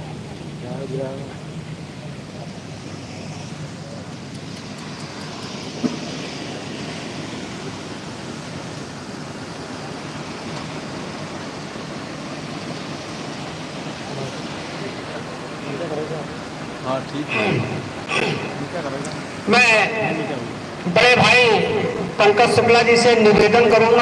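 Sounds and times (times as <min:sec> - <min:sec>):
faint low murmur: 0:00.0 - 0:22.3
steady rushing noise: 0:00.0 - 0:24.0.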